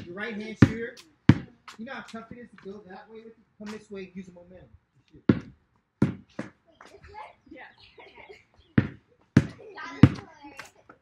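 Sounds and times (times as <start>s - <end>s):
basketball bouncing on pavers: 0.0s - 2.9s, 5.2s - 7.2s, 8.6s - 11.0s.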